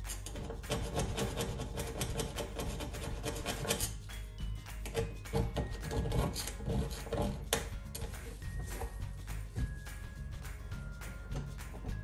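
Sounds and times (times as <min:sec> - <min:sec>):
knife scraping metal burner: 0:00.0 - 0:08.8.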